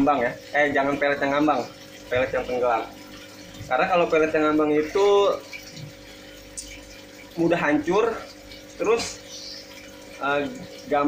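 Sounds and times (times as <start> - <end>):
aquarium water circulating: 0.0 - 11.0
pump hum: 0.0 - 11.0.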